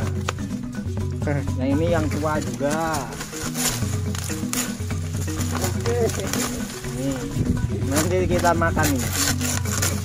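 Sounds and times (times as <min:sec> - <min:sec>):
background music with bass: 0:00.0 - 0:10.0
dry leaves crackling under knife: 0:01.7 - 0:10.0.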